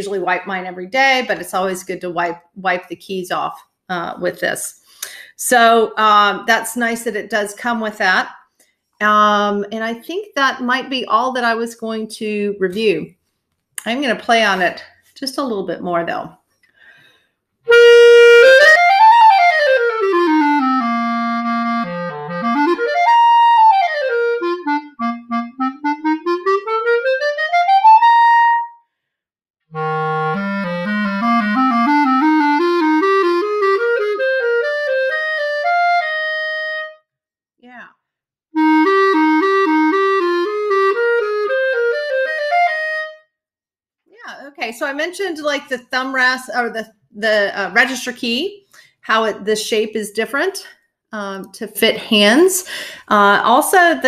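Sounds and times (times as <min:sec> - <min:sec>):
solo clarinet playing: 0:17.7 - 0:28.8, 0:29.7 - 0:37.1, 0:38.6 - 0:43.3.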